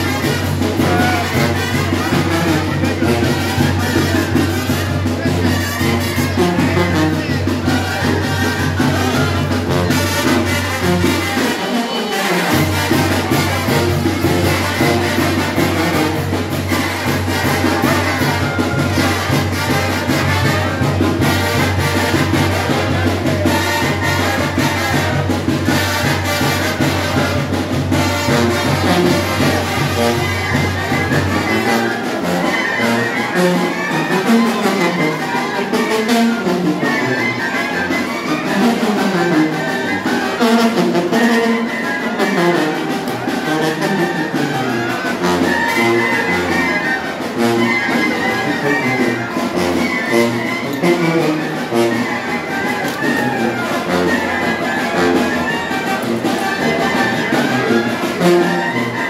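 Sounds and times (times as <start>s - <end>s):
brass band playing dance music: 0.0s - 59.0s.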